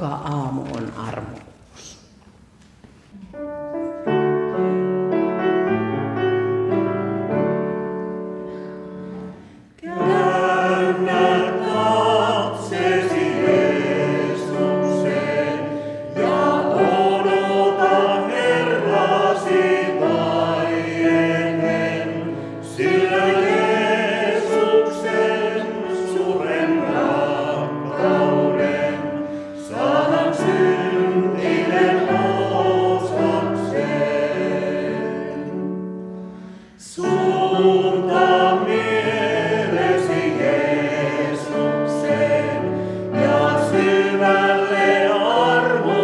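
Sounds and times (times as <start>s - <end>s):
vocal quartet singing a hymn: 4.3s - 46.0s.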